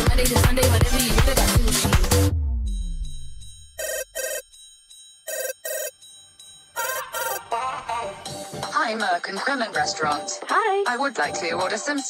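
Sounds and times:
song backing track: 0.0 - 2.5
telephone double ring: 3.8 - 4.6, 5.2 - 6.0, 6.7 - 7.5.

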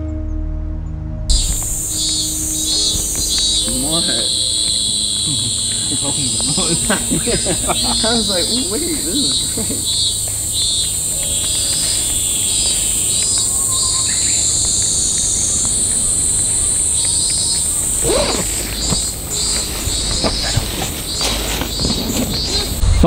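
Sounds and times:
low rumble: 0.0 - 23.0
insects chirping: 1.3 - 23.0.

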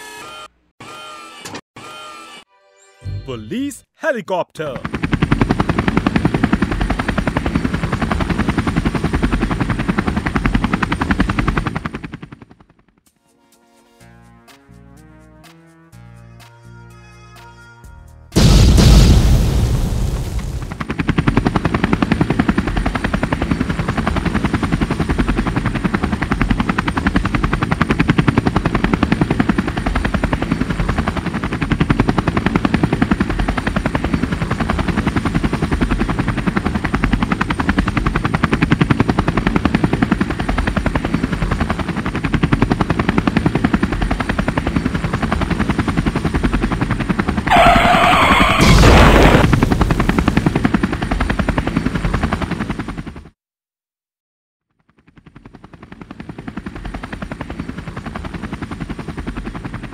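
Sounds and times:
cartoon helicopter rotor chopping: 0.0 - 2.5, 4.0 - 13.1, 20.0 - 53.4
brief high-pitched sound: 2.5 - 4.7
loud crash: 18.4 - 20.7, 47.5 - 50.1.

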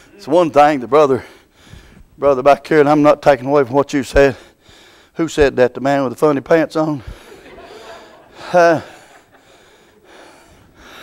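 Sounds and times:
low background noise: 0.0 - 11.0
man breathing into microphone: 1.2 - 2.2, 4.3 - 5.2, 7.0 - 11.0.

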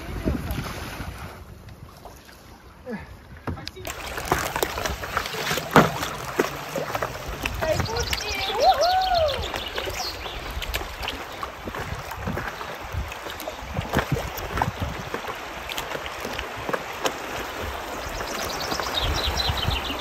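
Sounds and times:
paddle splashes: 0.0 - 20.0
river water rushing: 3.8 - 20.0.

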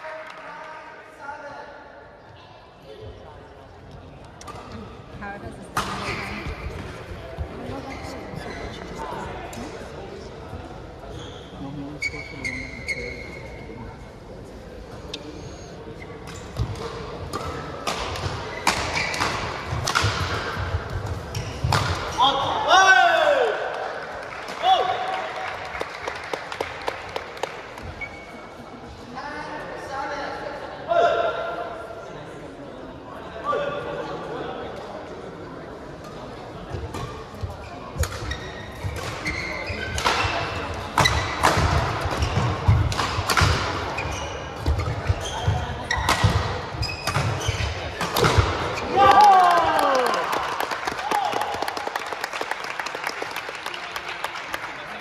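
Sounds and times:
crowd talking: 2.0 - 22.6, 23.4 - 52.2
shoes squeaking on floor: 7.6 - 9.0, 11.1 - 13.8, 18.4 - 19.5, 27.9 - 28.5, 37.2 - 40.4, 43.9 - 48.0
rackets striking shuttlecock: 16.3 - 20.5, 41.0 - 43.8, 46.0 - 48.7.

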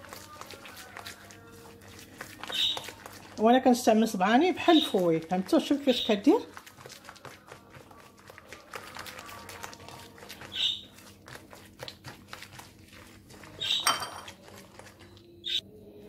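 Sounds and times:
hand squishing butter mixture: 0.0 - 15.6.

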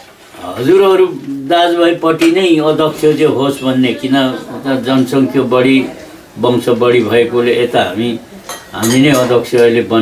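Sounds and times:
man talking: 0.4 - 10.0
dishes and cutlery clinking: 8.4 - 9.8.

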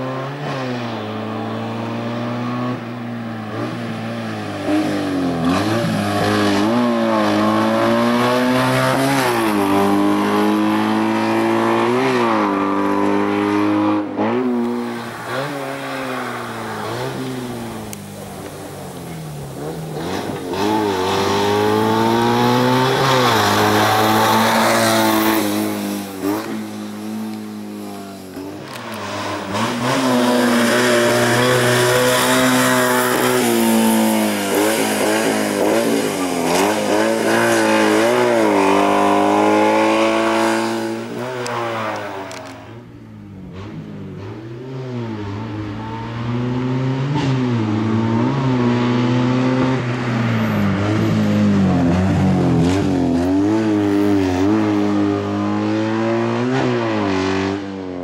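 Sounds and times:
race car engine revving hard: 0.0 - 42.8, 43.4 - 58.0.

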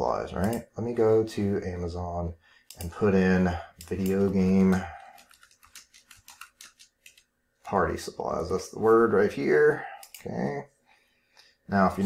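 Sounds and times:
typing on computer keyboard: 3.8 - 7.3.

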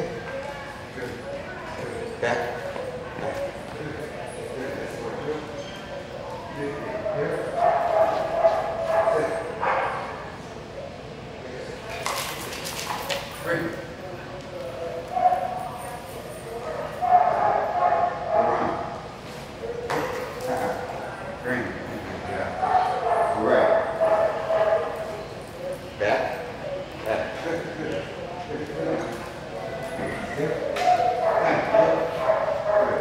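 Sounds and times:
dogs barking and whining: 0.0 - 10.4, 14.6 - 21.4, 22.3 - 27.4, 28.2 - 33.0
people talking: 0.0 - 18.8, 19.7 - 33.0
dog whining: 29.5 - 31.6.

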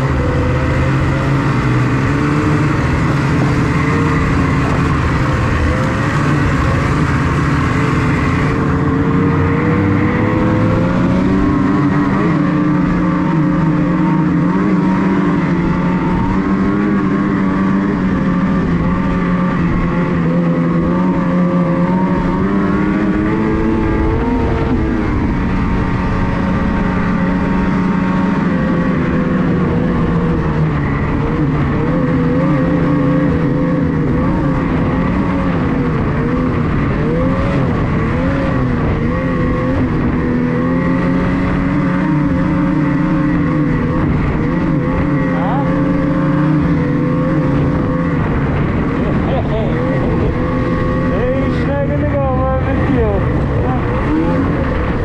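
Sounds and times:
snowmobile engine running: 0.0 - 55.0.

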